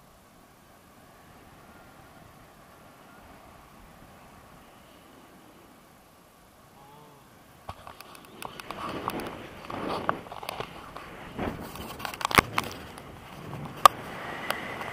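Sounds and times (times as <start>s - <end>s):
wind buffeting microphone: 7.3s - 14.9s.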